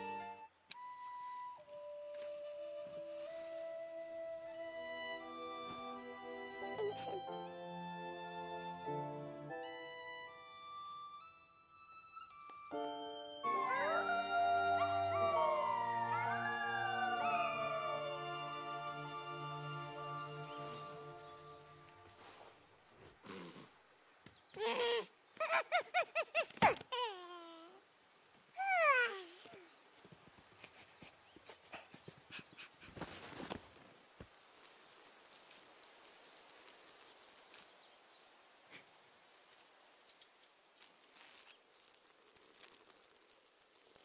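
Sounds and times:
orchestral music: 0.0 - 11.2, 12.5 - 22.3
wolf-like howls: 13.5 - 18.3
soft scuffs in dirt: 21.8 - 23.2, 32.9 - 34.3
boy panting and sniffing: 30.6 - 33.4.

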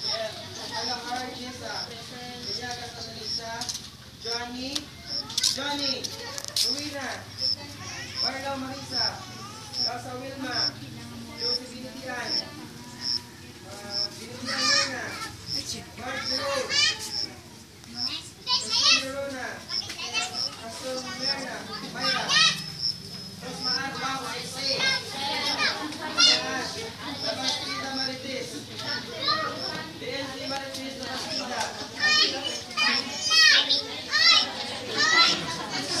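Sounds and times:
children playing: 0.0 - 36.0
high-pitched voices calling out: 5.0 - 19.1, 19.7 - 36.0.

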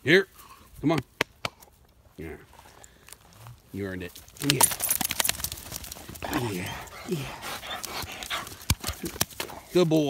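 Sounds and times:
dog panting: 5.8 - 9.8.

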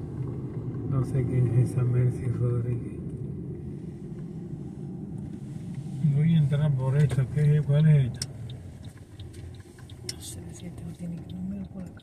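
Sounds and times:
road and engine rumble in car: 0.0 - 12.0.

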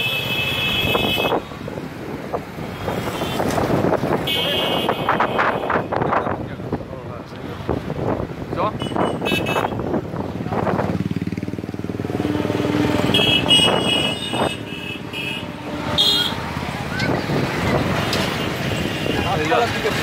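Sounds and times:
traffic passing close by: 0.0 - 20.0
car horn toots: 4.3 - 6.0, 8.8 - 9.8, 12.2 - 16.4.

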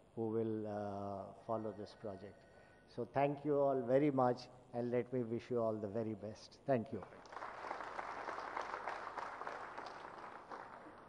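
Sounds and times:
audience applauding: 7.2 - 11.0.

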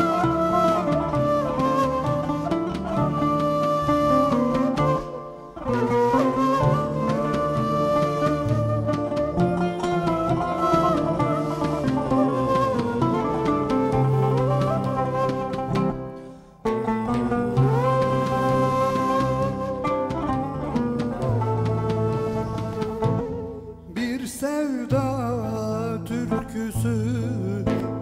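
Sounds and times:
end-blown flute melody: 0.0 - 24.1
plucked strings: 0.0 - 28.0.

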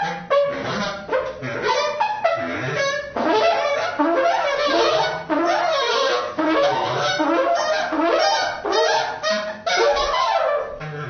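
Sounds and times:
trumpet improvising: 0.0 - 11.0.

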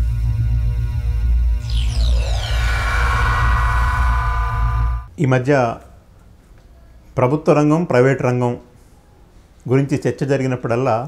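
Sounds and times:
deep steady drone with held tones: 1.6 - 5.1
shimmering sweep falling in pitch: 1.6 - 5.1.

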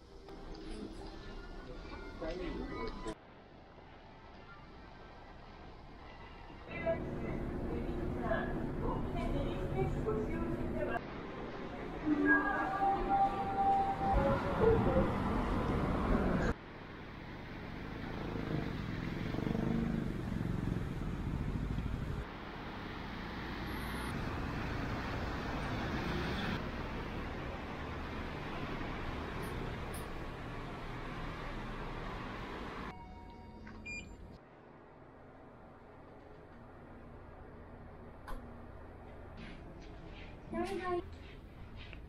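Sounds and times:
road traffic noise: 0.0 - 42.0.

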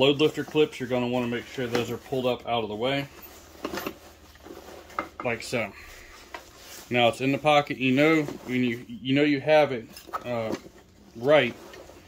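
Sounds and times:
fabric backpack rustling: 0.0 - 12.0.

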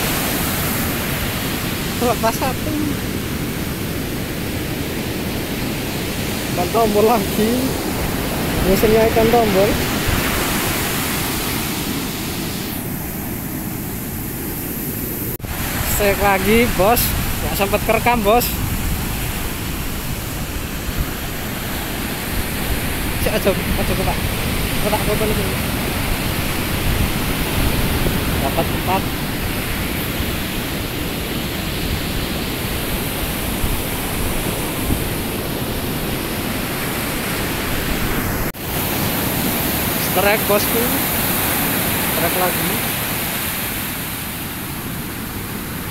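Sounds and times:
wind on microphone: 0.0 - 39.7
ocean surf breaking: 0.0 - 45.9.

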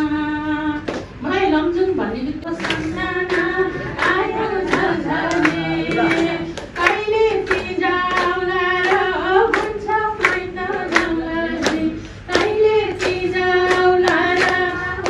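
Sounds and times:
woman singing slow song: 0.0 - 15.0
hands clapping along: 2.4 - 15.0.

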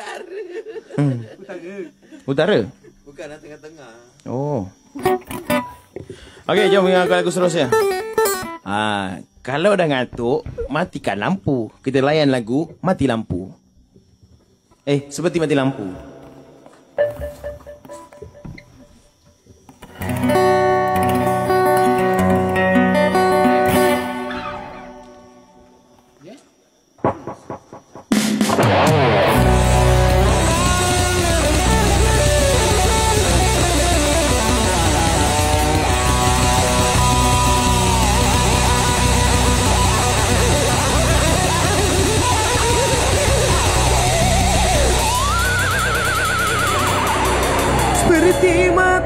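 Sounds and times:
guitars strumming chords: 5.0 - 5.8, 6.5 - 8.6, 19.9 - 25.5, 28.1 - 49.0
loud rock band playing: 28.1 - 49.0.

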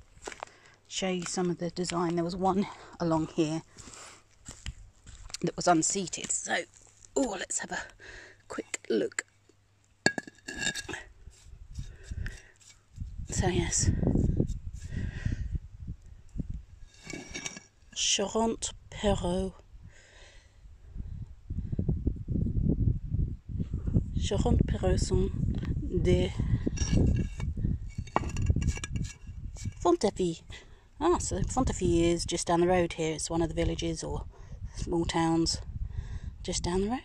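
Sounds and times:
tile knocking and scraping: 28.0 - 29.8.

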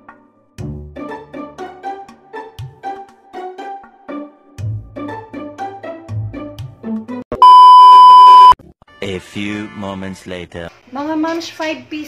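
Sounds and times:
background music: 0.0 - 7.2
loud electronic beep: 7.4 - 8.6.

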